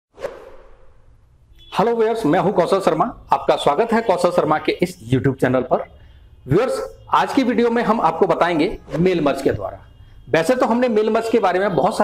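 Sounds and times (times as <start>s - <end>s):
whoosh: 0.1s - 1.3s.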